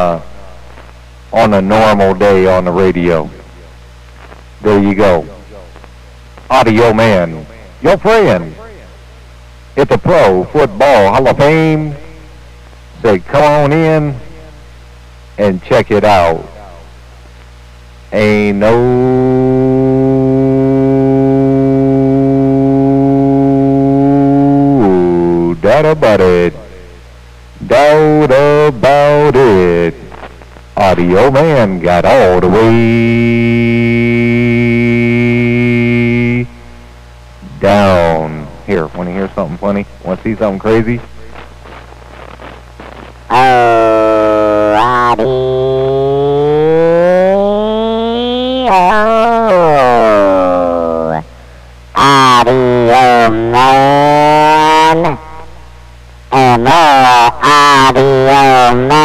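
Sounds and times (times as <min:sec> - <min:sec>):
man's voice through radio: 0:01.3 - 0:03.6, 0:04.6 - 0:05.8, 0:06.5 - 0:08.9, 0:09.8 - 0:12.0, 0:13.0 - 0:14.3, 0:15.4 - 0:16.8, 0:18.1 - 0:19.1, 0:24.8 - 0:26.8, 0:27.6 - 0:33.0, 0:37.4 - 0:42.4, 0:43.3 - 0:45.4, 0:52.0 - 0:55.2, 0:56.3 - 0:59.0
man howling over radio: 0:18.2 - 0:20.1, 0:43.3 - 0:51.3, 0:52.0 - 0:55.5, 0:56.3 - 0:59.0.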